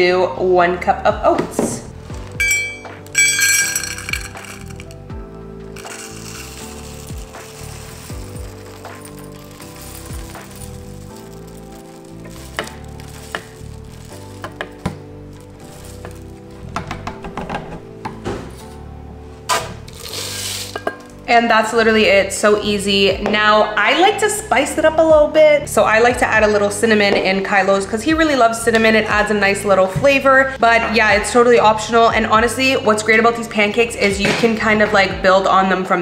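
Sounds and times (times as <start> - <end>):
soft background music: 0.0 - 36.0
oats pouring into metal cup: 2.2 - 5.0, 5.8 - 16.5, 19.9 - 20.9
oats pouring into plastic cup: 3.0 - 5.0, 5.8 - 16.5, 19.9 - 20.8.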